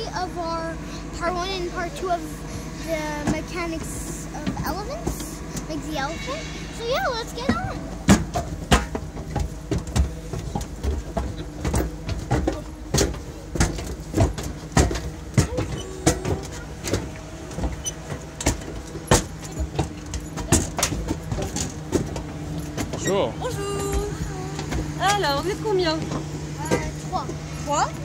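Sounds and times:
low engine hum: 0.0s - 28.0s
footsteps climbing stairs: 6.9s - 28.0s.

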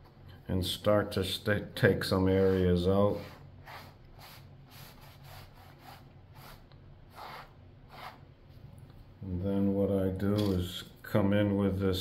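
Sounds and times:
cloth rag rubbing paint: 2.0s - 8.3s.

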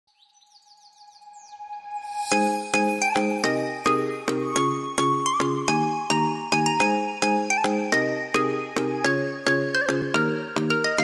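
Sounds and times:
falling bird-like chirps: 0.1s - 4.3s.

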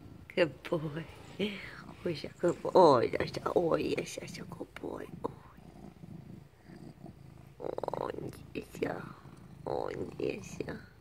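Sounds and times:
cat purring: 0.0s - 11.0s.

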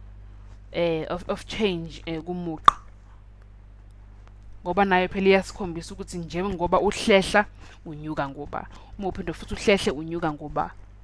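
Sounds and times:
low electrical hum: 0.0s - 11.0s
narrator speaking: 0.7s - 2.7s, 4.6s - 10.8s.

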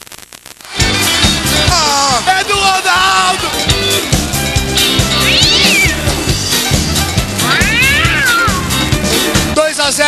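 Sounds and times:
rock music with steady beat: 0.7s - 10.0s
cat meowing: 5.0s - 6.2s, 7.4s - 8.8s.

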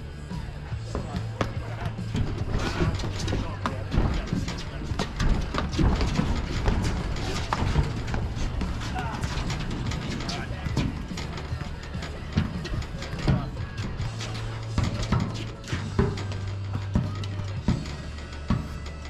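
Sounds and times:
background music: 0.0s - 19.0s
low voices: 0.0s - 19.0s
ball bouncing: 0.9s - 18.9s.

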